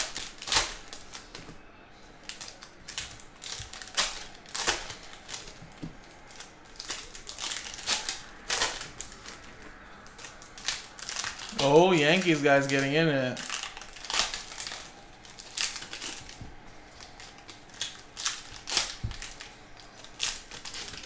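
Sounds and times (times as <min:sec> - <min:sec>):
card pack wrappers tearing: 0:00.0 - 0:21.0.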